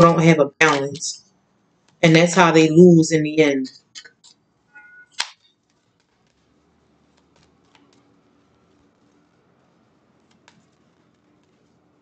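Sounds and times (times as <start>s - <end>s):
sharp snap of cards: 5.2s - 5.4s.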